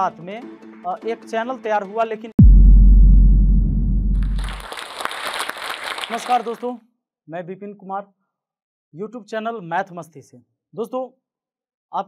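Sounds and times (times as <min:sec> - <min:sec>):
deep low boom: 0:02.4 - 0:04.7
applause: 0:04.2 - 0:06.8.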